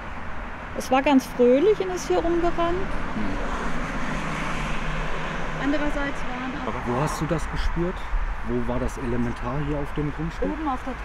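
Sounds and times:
passing motor vehicle rushing: 0.0 - 11.0.

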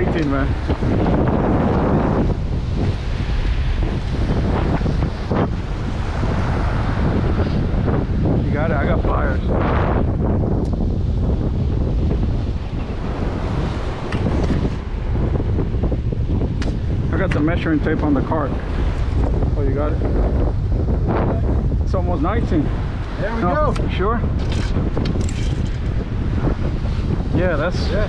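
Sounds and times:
surf washing against rocks: 0.0 - 28.0
wind buffeting microphone: 0.0 - 28.0.

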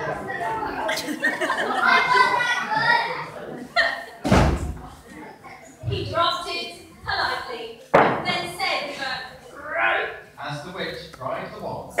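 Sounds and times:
voices: 0.0 - 10.4
heavy thump on hollow stage: 4.2 - 4.9.

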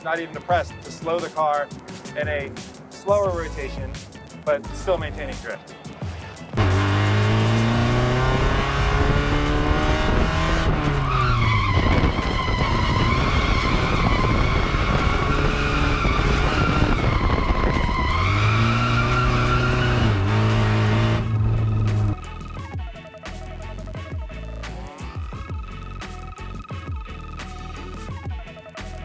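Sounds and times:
car engine revving: 6.6 - 22.3
tyres squealing: 10.9 - 22.2.

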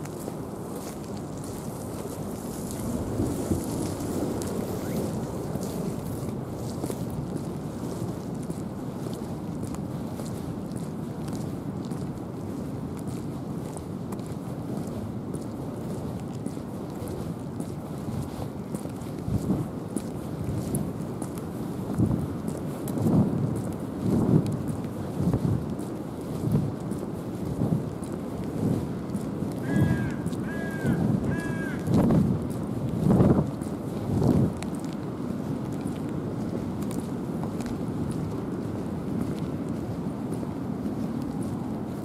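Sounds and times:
footsteps on pavement: 0.0 - 42.0
wind on microphone: 0.0 - 42.0.

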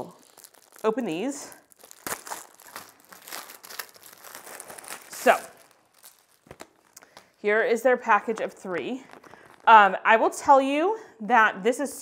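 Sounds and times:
plastic envelopes crinkling: 0.0 - 9.9.

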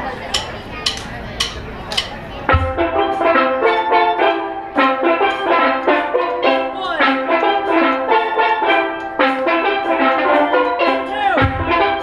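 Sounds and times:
steel pan band playing: 0.0 - 12.0.

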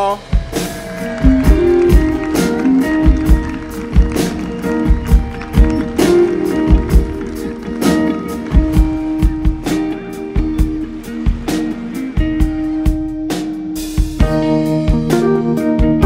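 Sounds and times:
drum kit beat: 0.0 - 16.0
keyboard notes: 0.0 - 16.0
electric guitar: 0.4 - 16.0.

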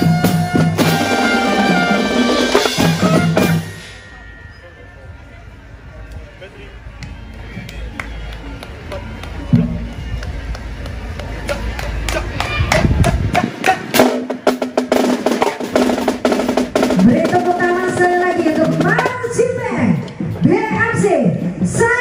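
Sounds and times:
drum roll: 0.0 - 4.0, 12.1 - 19.4
rapid drum and cymbal hits: 0.0 - 4.0, 12.1 - 22.0
sustained brass chords: 0.0 - 7.4.

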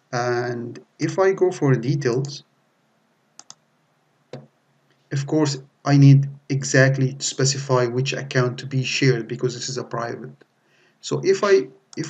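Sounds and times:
computer mouse clicking: 3.4 - 3.6.

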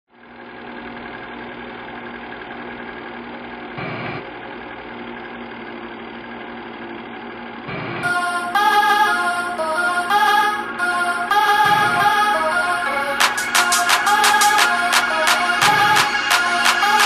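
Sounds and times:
film projector whirring: 0.1 - 8.0.

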